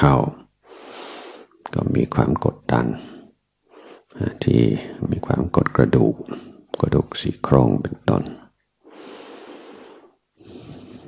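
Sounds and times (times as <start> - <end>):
man breathing: 0.6 - 1.6, 3.0 - 4.2, 8.8 - 11.0.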